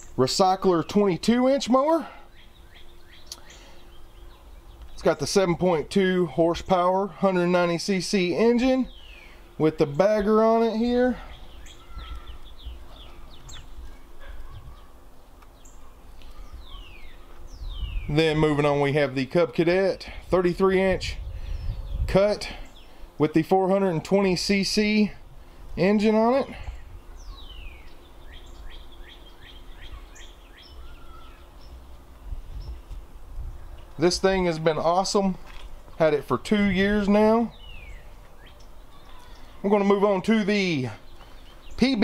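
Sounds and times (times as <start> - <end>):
birds chirping: 0.0 - 42.0
low steady background rumble: 0.0 - 42.0.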